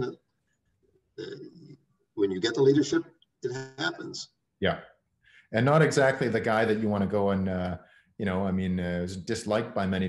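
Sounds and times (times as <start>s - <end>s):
man's voice: 1.2s - 1.6s, 2.2s - 4.8s, 5.6s - 10.0s.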